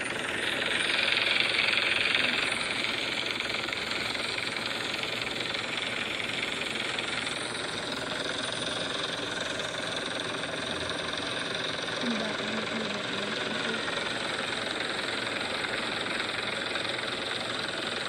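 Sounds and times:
helicopter hovering: 0.0 - 18.0.

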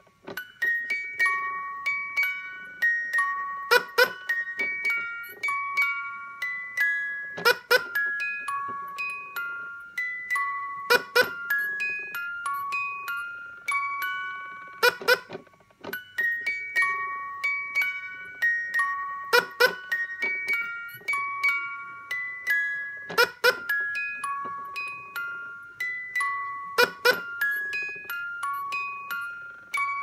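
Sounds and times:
toy playing bell-like lullaby: 0.0 - 30.0.

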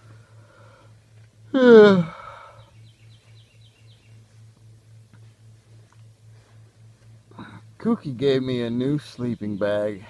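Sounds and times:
bird chirping: 2.4 - 4.8, 8.2 - 10.0.

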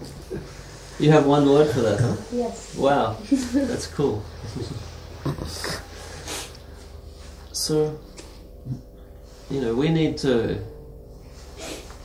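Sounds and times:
steady low hum: 0.0 - 12.0
breathy chuckles: 5.2 - 6.0.

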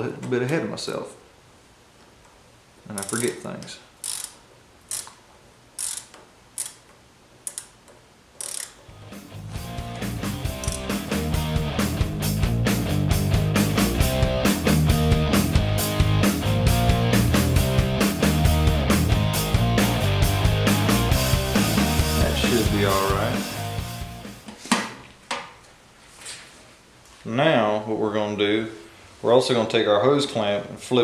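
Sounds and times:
socket ratchet clicking: 3.0 - 3.4, 4.0 - 5.2, 5.8 - 9.0, 10.6 - 11.0
background music: 8.9 - 24.4.

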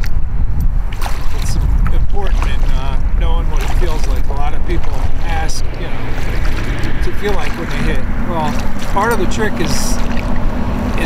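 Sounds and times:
wind rumble on microphone: 0.0 - 11.0
paddle splashing in water: 0.9 - 11.0.

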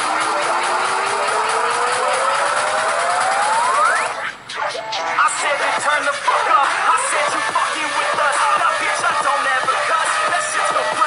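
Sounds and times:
synth tone gliding upward: 0.6 - 4.3.

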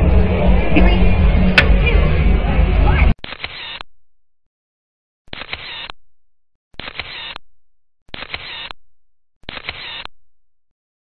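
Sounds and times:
camera shutter sound effect: 3.2 - 3.8, 5.3 - 5.9, 6.8 - 7.4, 8.1 - 8.8, 9.4 - 10.1.

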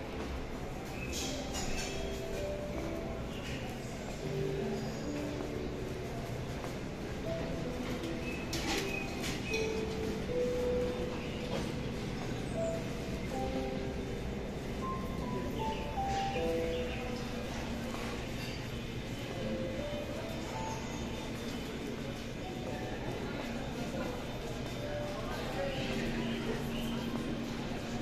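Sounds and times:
air handling and crowd rumble: 0.0 - 28.0
faint background music: 0.0 - 28.0.

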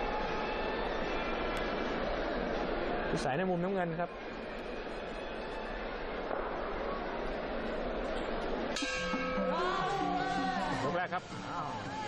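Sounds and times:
arena crowd noise: 0.0 - 12.0
ringing bell strike: 8.8 - 10.5.

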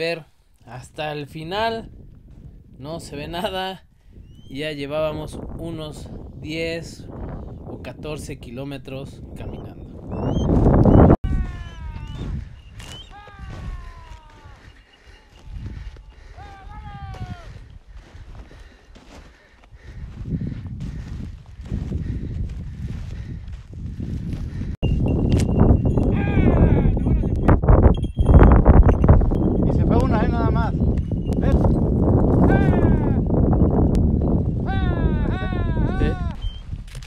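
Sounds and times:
wind buffeting microphone: 1.5 - 37.0.

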